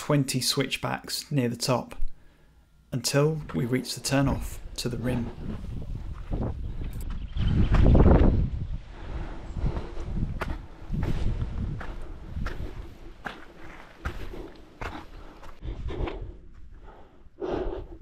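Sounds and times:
footsteps on a muddy grassy trail: 3.4 - 18.0.

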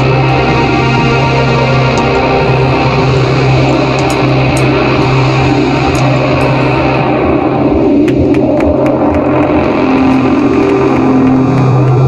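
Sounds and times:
bass guitar: 0.0 - 12.0
distorted electric guitar: 0.0 - 12.0.

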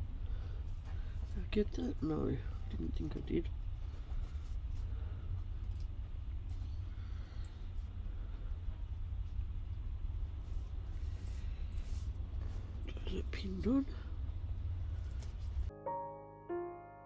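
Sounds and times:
low background rumble: 0.0 - 15.7
fabric and paper rustling: 3.6 - 6.8, 10.2 - 13.0, 14.8 - 15.7.

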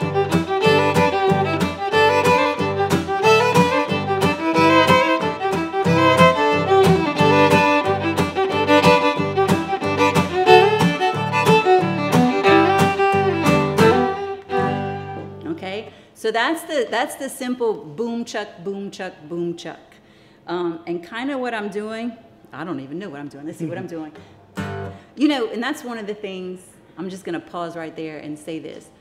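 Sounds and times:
acoustic guitar strumming: 0.0 - 15.4, 24.5 - 25.0
fiddle melody: 0.0 - 15.6.

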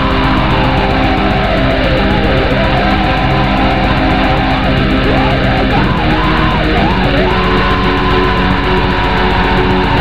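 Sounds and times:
bass guitar: 0.0 - 10.0
distorted electric guitars: 0.0 - 10.0.

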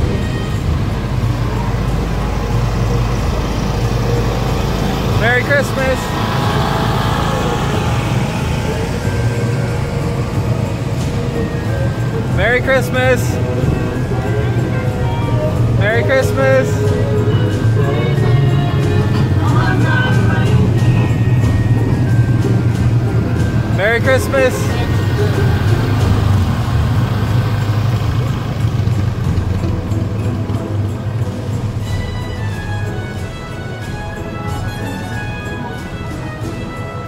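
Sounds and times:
faint music: 0.0 - 37.0
vehicle engines rumbling: 0.0 - 37.0
person calling out: 23.8 - 25.6.

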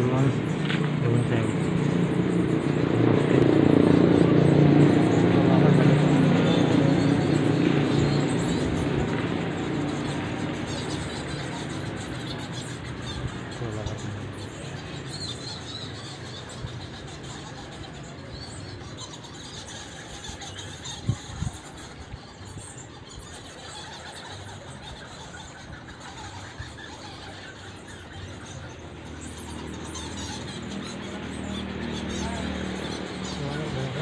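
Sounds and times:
bats squeaking and chittering: 0.0 - 34.0.

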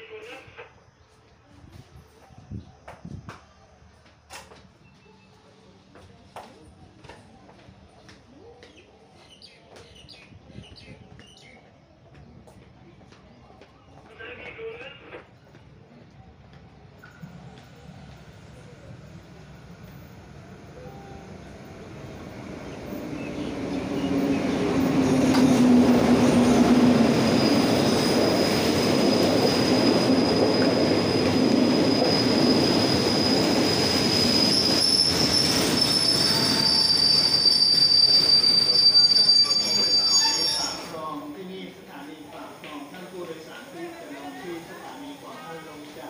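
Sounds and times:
train wheels rumbling: 16.0 - 41.0
train brakes squealing: 22.7 - 41.3.

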